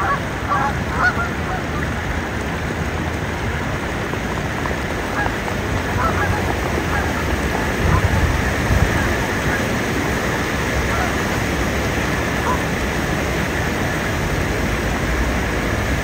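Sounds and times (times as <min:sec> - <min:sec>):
geese honking: 0:00.0 - 0:02.0, 0:05.1 - 0:11.4, 0:12.3 - 0:12.7
birds splashing across water: 0:00.0 - 0:16.0
rushing water: 0:00.0 - 0:16.0.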